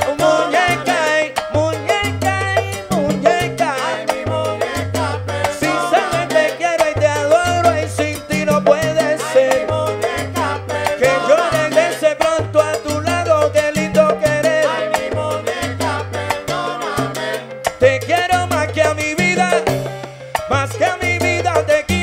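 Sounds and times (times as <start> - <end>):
salsa band playing: 0.0 - 22.0.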